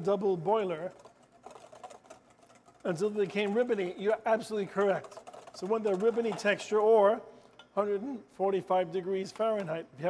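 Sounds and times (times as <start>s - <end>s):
whisk clicking against metal bowl: 0.6s - 7.0s.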